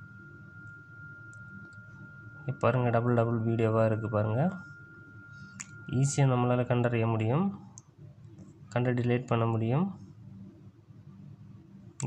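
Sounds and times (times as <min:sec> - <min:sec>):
man speaking: 0:05.9 - 0:07.6.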